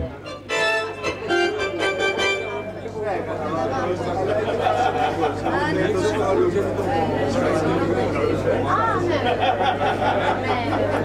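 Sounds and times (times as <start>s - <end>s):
sustained instrument notes: 0.0s - 3.2s
audience chattering: 0.0s - 11.0s.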